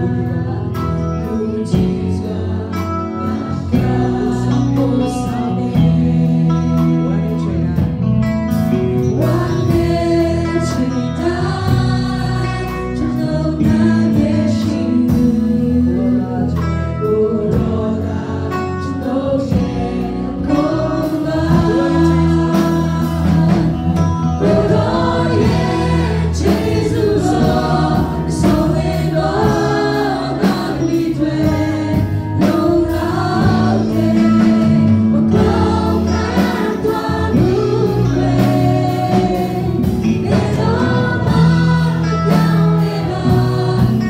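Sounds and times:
gospel singers with band: 0.0s - 44.0s.

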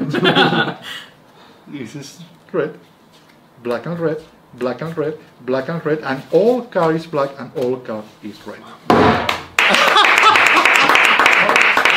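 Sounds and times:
group clapping: 9.2s - 11.9s
people laughing and exclaiming: 9.7s - 11.5s.

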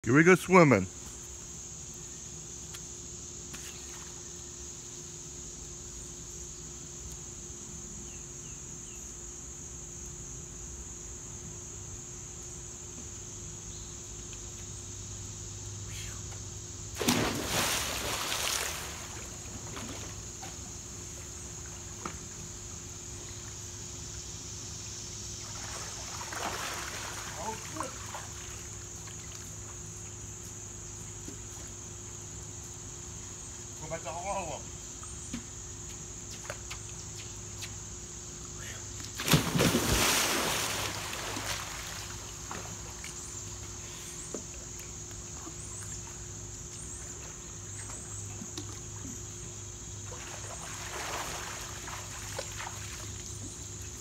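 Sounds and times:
crickets chirring: 0.0s - 54.0s
water crashing and sloshing: 17.0s - 20.0s, 39.2s - 42.0s
person splashing into pool: 17.0s - 20.2s, 25.5s - 28.7s, 39.1s - 43.0s, 50.1s - 53.2s.

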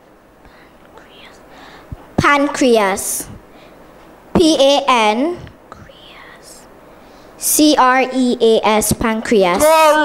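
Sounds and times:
faint whispering: 0.5s - 1.6s, 5.7s - 6.7s.

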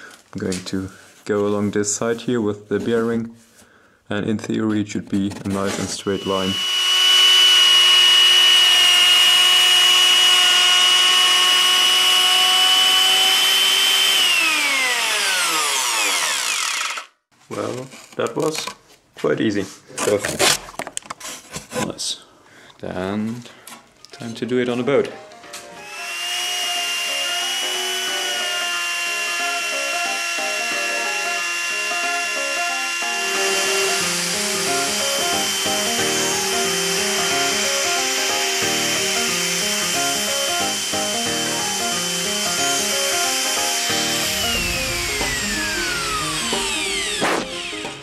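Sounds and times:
router motor whining: 6.0s - 17.2s, 25.8s - 48.0s
background music: 24.2s - 28.6s, 29.3s - 48.0s.

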